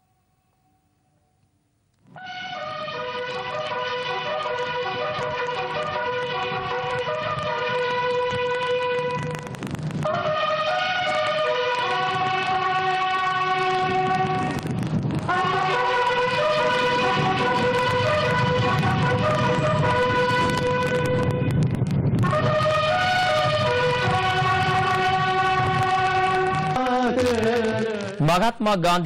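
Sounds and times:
bugles playing slow call: 2.2s - 28.2s.

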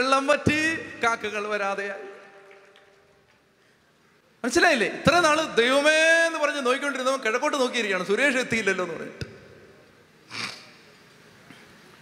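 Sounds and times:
amplified voice echo: 0.0s - 3.0s, 4.4s - 9.6s.

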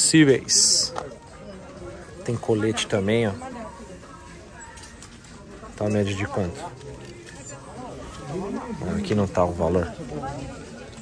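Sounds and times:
low shop background noise: 0.0s - 11.0s.

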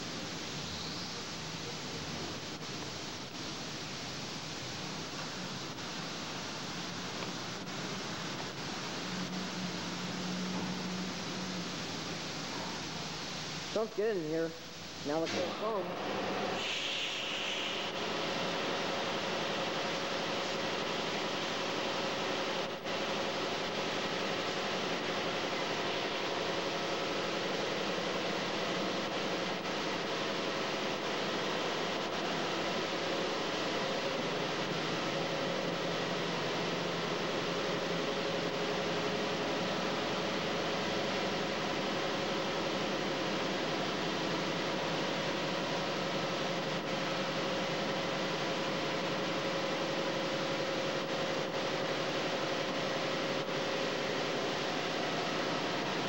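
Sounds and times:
high-pressure water spray hissing: 0.0s - 47.8s
faint steady hum: 0.0s - 56.0s.

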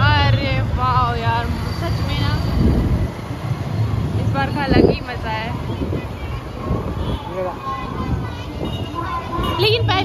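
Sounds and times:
traffic rumble of engines and tyres: 0.0s - 10.0s
wind on microphone: 2.2s - 3.2s, 4.2s - 9.7s.

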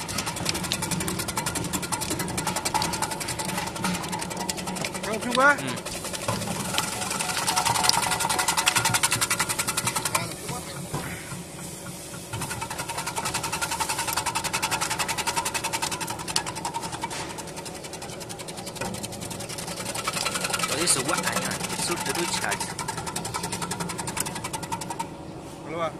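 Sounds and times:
motor hum: 0.0s - 25.6s.

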